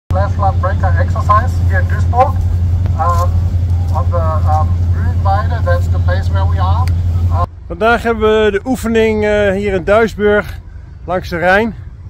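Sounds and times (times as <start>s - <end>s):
man speaking into microphone: 0.1s - 11.8s
steady low hum: 0.1s - 12.0s.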